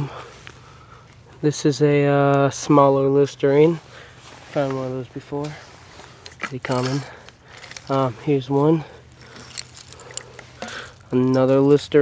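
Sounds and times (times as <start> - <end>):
crunching and scraping: 3.5 - 12.0
hand digging in soil: 3.7 - 11.7.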